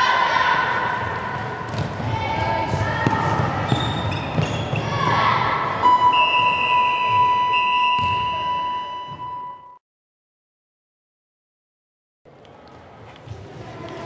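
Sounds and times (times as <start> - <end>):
children shouting: 0.0 - 1.0
handball bouncing on wooden court: 1.4 - 5.0, 8.0 - 8.3
long steady high tone: 5.8 - 9.8.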